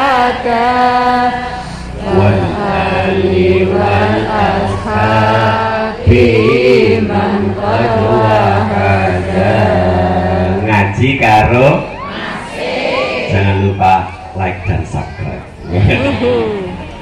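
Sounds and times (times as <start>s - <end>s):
chanted devotional singing over loudspeaker: 0.0s - 16.5s.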